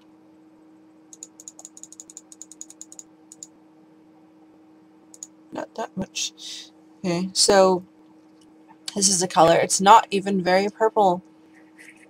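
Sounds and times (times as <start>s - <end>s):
light computer clicks: 1.1s - 3.5s, 5.1s - 5.3s.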